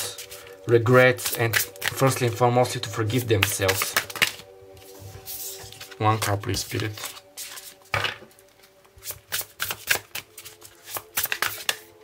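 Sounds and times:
cards being shuffled: 0.0s - 2.4s, 3.1s - 12.0s.

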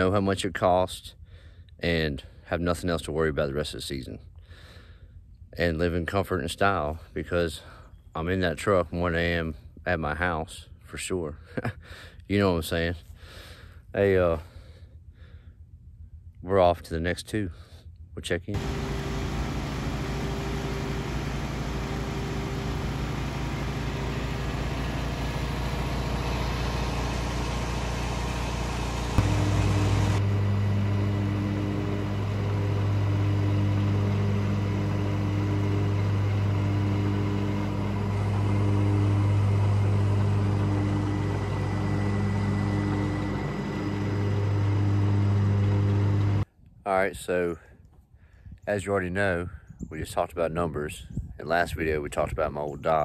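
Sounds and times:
riding mower engine running: 18.5s - 46.4s.

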